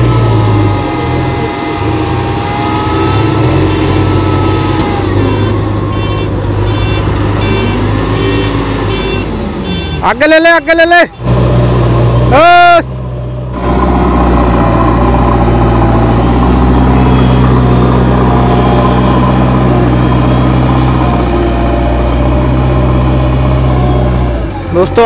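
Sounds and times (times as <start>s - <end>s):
diesel engine humming: 0.0s - 25.0s.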